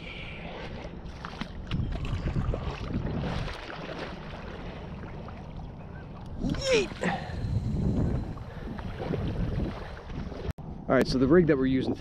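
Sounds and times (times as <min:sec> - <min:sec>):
wind buffeting microphone: 0:00.9 - 0:11.5.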